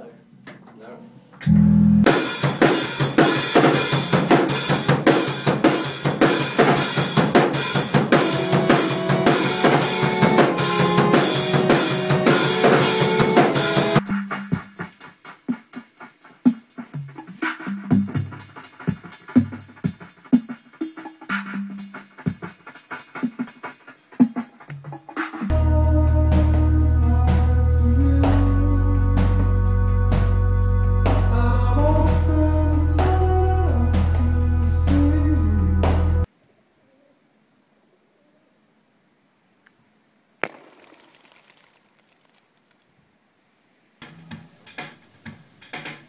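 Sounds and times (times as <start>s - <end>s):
rock band playing groove: 2.0s - 25.5s
drum machine beat: 2.1s - 25.5s, 44.0s - 46.0s.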